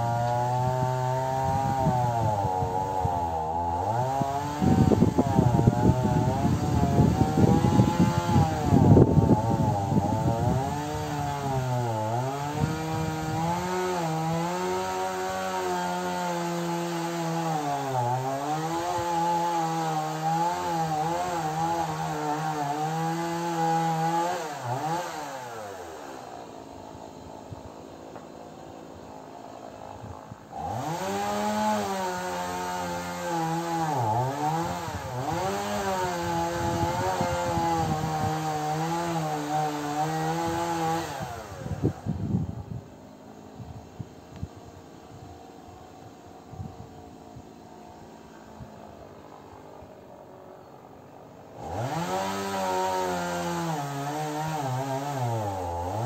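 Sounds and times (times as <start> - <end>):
chainsaw cutting wood: 0.0 - 56.0.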